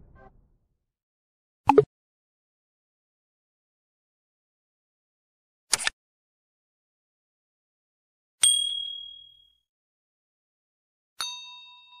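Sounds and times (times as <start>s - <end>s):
bright high ding: 8.4s - 9.4s, 11.2s - 12.0s
lower bell-like ding: 8.4s - 9.4s, 11.2s - 12.0s.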